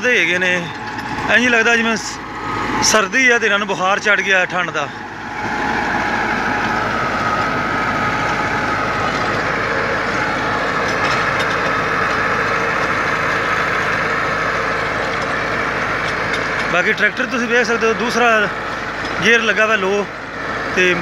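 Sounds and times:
high whine: 0:00.0 - 0:21.0
tractor diesel engine: 0:00.0 - 0:21.0
rotavator churning soil: 0:03.9 - 0:21.0.

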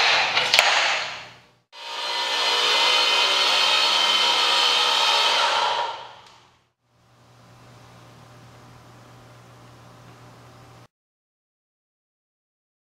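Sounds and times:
electric motor running: 0:01.8 - 0:06.3.

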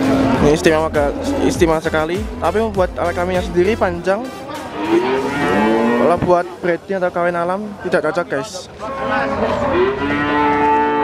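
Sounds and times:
cattle mooing: 0:04.5 - 0:06.6, 0:08.7 - 0:11.0.

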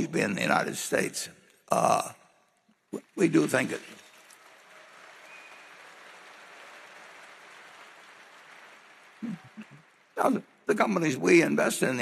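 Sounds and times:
large audience applauding: 0:03.0 - 0:11.4.

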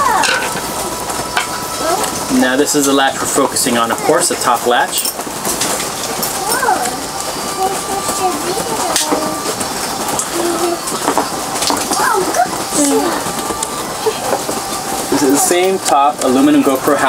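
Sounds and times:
quiet voices: 0:05.8 - 0:17.0.

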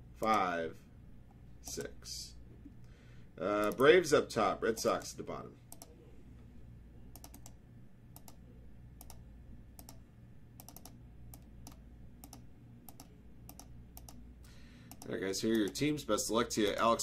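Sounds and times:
mouse and keyboard clicking: 0:07.1 - 0:07.6, 0:08.2 - 0:08.4, 0:09.0 - 0:09.2, 0:09.8 - 0:10.0, 0:10.6 - 0:14.2.

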